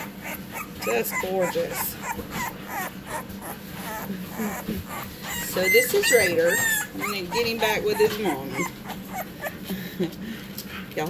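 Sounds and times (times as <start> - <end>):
puppy whimpering: 0.0 - 9.7.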